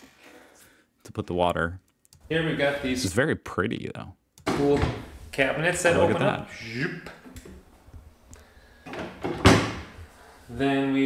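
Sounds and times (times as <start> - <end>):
cabinet door shutting with a knock: 9.2 - 9.9.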